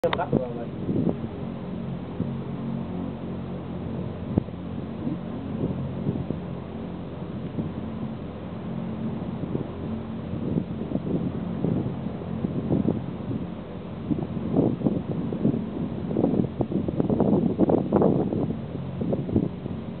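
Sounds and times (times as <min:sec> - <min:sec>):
wind buffeting microphone: 0:00.0 - 0:20.0
wind turbine mechanical hum: 0:00.0 - 0:20.0.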